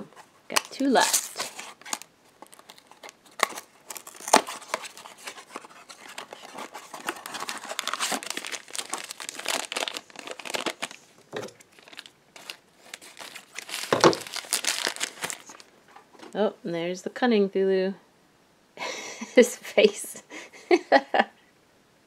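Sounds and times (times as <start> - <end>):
plastic bag crinkling: 0.0 - 15.7.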